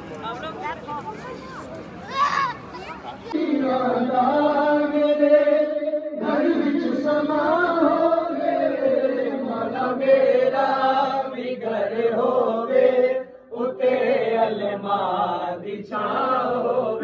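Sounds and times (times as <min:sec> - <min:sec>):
men chanting devotional recitation: 0:03.2 - 0:17.0.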